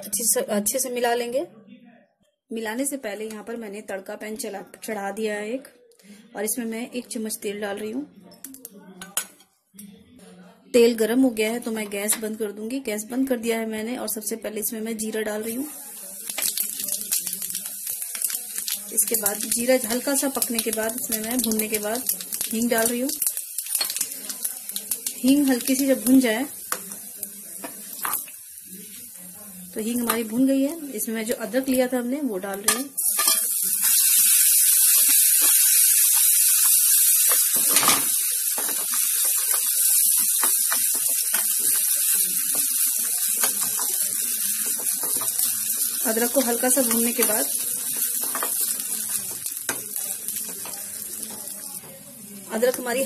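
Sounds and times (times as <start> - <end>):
seeds sizzling in hot oil: 15.4 - 31.1, 32.9 - 53.0
steel spoon scraping a pan: 32.7 - 34.2.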